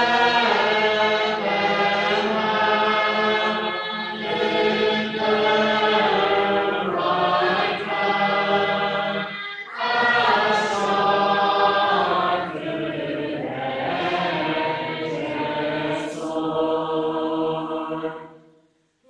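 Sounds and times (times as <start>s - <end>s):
congregation singing unaccompanied: 0.0s - 18.5s.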